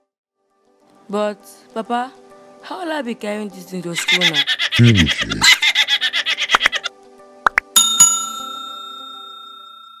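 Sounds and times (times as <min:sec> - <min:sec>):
bright bell chime: 0:07.8 - 0:10.0.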